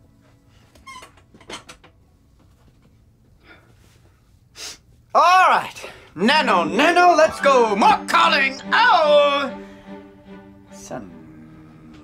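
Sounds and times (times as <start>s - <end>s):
wooden chair squeaking and scraping: 0.7s - 2.0s.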